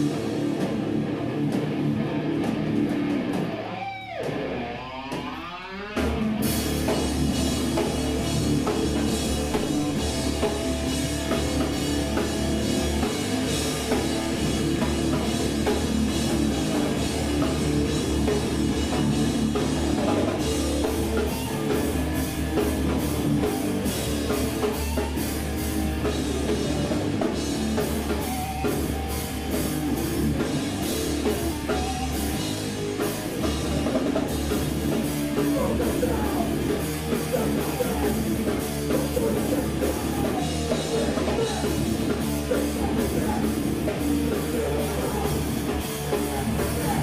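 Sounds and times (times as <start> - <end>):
drums and crashing cymbals: 0.0 - 47.0
electric bass guitar: 0.0 - 47.0
live rock band playing: 0.0 - 47.0.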